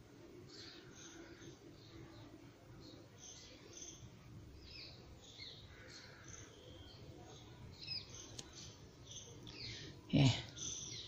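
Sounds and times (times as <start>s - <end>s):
faint bird chirps: 0.3s - 11.0s.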